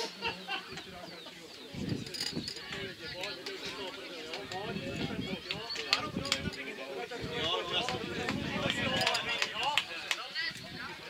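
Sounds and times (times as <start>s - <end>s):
distant voices calling and talking: 0.0s - 11.0s.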